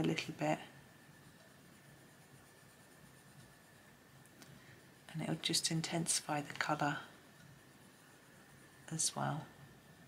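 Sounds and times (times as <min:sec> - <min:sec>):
coloured pencil rubbing on paper: 0:00.0 - 0:09.9.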